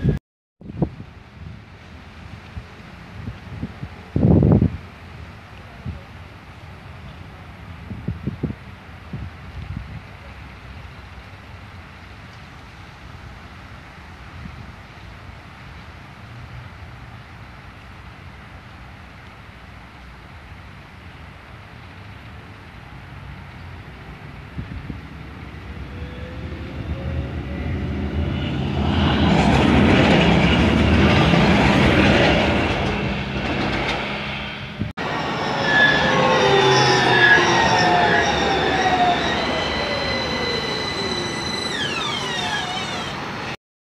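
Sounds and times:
tram passing on rails: 0:24.0 - 0:43.6
electric motor whine: 0:35.0 - 0:43.6.

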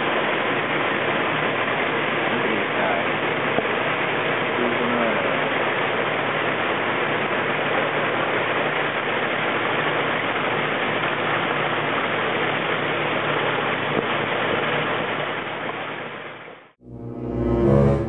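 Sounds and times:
water rushing: 0:00.0 - 0:15.8.

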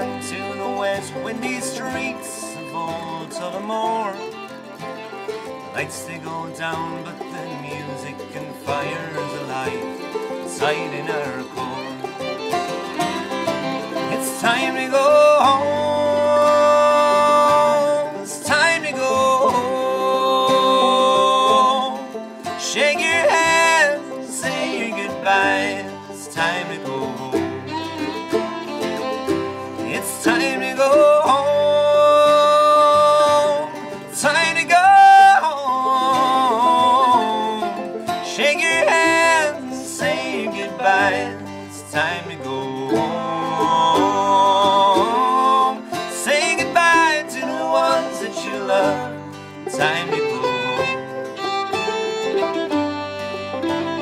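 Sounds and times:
banjo rolls: 0:00.0 - 0:54.0
fiddle: 0:00.0 - 0:54.0
mandolin: 0:00.0 - 0:54.0
strummed acoustic guitar: 0:00.0 - 0:54.0
wordless held singing: 0:05.7 - 0:28.2, 0:29.8 - 0:51.0.

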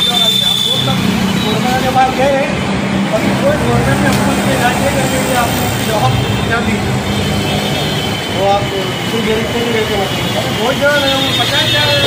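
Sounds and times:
people talking: 0:00.0 - 0:07.6, 0:08.2 - 0:12.0
vehicle noise: 0:00.0 - 0:12.0.

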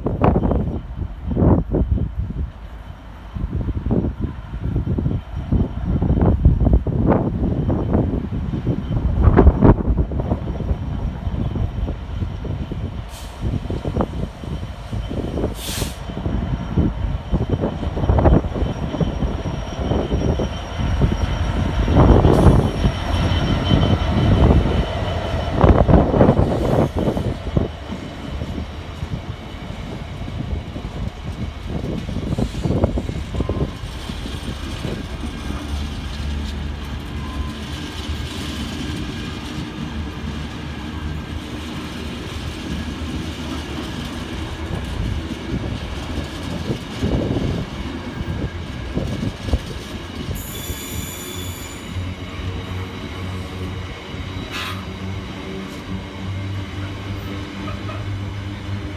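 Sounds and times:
diesel locomotive passing: 0:00.0 - 0:58.9
high wheel squeal: 0:13.2 - 0:55.9, 0:56.7 - 0:58.9.

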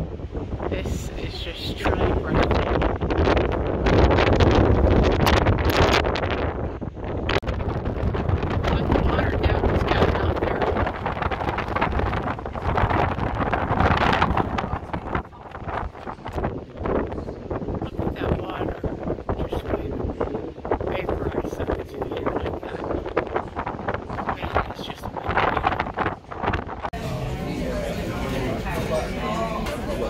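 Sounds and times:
gusty wind on microphone: 0:00.0 - 0:27.1.

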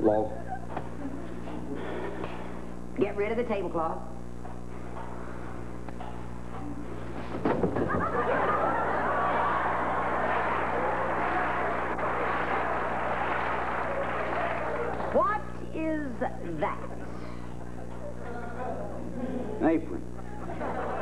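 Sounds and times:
low electrical hum: 0:00.0 - 0:21.0
audience laughing: 0:07.6 - 0:15.1, 0:16.9 - 0:21.0.

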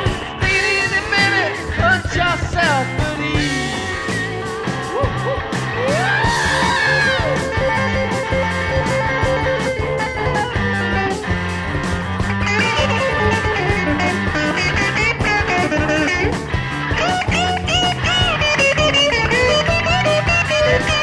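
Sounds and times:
bass and drum beat: 0:00.0 - 0:21.0
electric lead guitar bending notes: 0:00.0 - 0:21.0.

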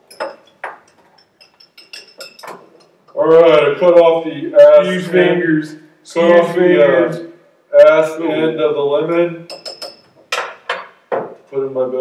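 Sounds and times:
metal pick clinking against glass: 0:00.0 - 0:03.2, 0:09.1 - 0:11.0.

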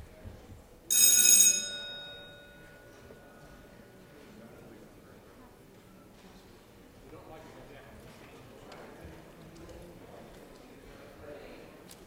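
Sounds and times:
bell ringing: 0:00.9 - 0:03.5.

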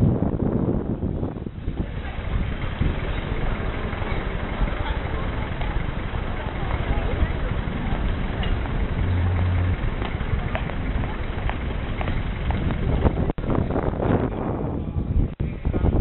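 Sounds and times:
low hum: 0:00.0 - 0:14.3
traffic: 0:00.0 - 0:16.0
passers-by talking indistinctly: 0:00.8 - 0:16.0.

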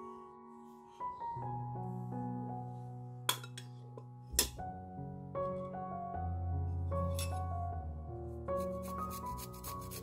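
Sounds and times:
gentle piano music: 0:00.0 - 0:10.0.

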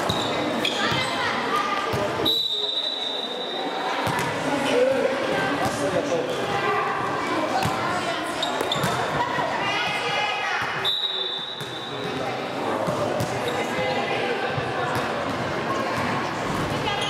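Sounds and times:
referee's whistle: 0:02.2 - 0:03.8, 0:10.8 - 0:12.1.

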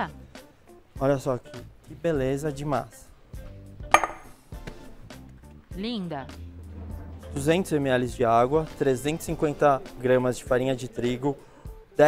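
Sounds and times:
soft background music: 0:00.0 - 0:12.0
glass bowl knocking on stone: 0:03.9 - 0:04.4.

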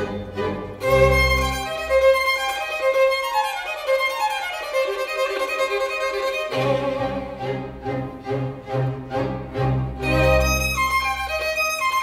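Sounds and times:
string ensemble low chords: 0:00.0 - 0:02.6, 0:06.4 - 0:11.9
solo violin playing fast: 0:00.0 - 0:12.0.

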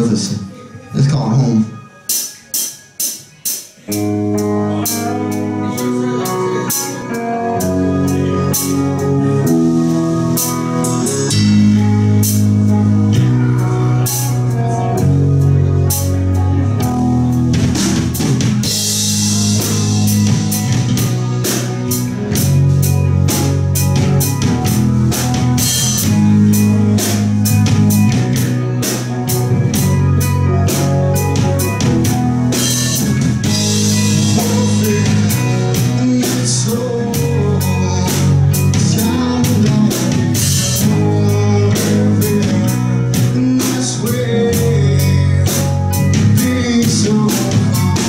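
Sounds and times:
live rock band instrumental: 0:00.0 - 0:48.0
electric guitars sustained chords: 0:03.9 - 0:48.0.

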